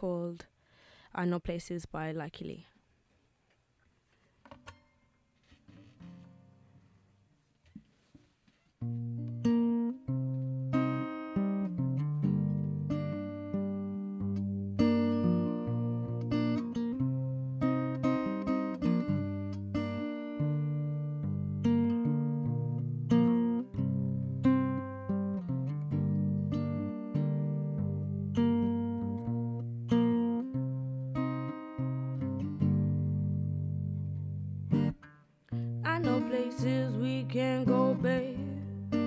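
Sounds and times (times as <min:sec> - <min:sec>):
acoustic guitar chords: 0:08.8 - 0:39.0.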